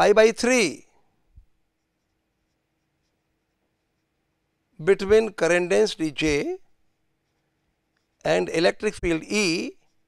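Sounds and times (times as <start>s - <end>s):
marker pen writing on paper: 1.7s - 4.3s, 5.0s - 10.0s.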